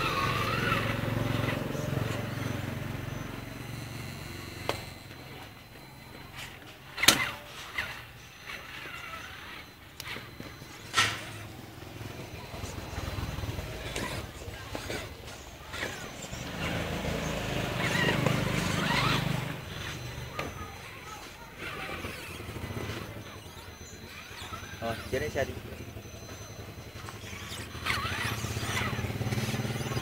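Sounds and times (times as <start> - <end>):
faint electric motor whine: 0.0 - 30.0
rc truck wheels knocking and clattering: 27.0 - 30.0.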